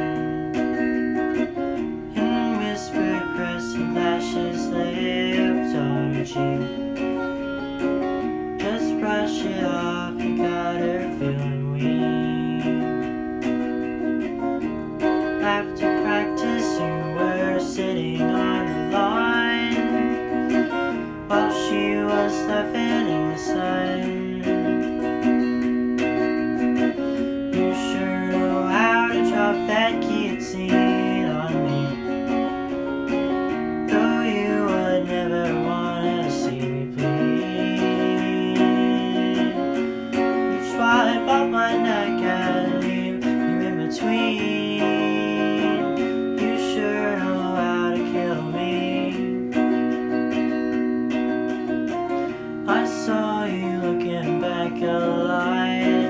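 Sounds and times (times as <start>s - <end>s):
electric guitar playing: 0.0s - 56.0s
young man singing: 0.0s - 56.0s.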